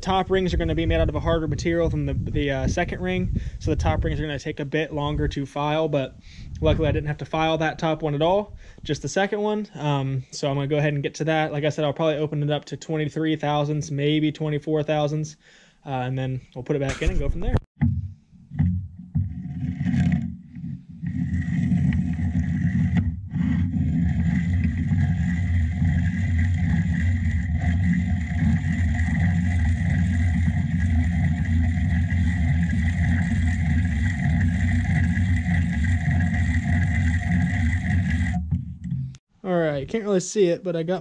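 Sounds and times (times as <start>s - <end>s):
hand-crank filer grinding metal: 18.5s - 38.9s.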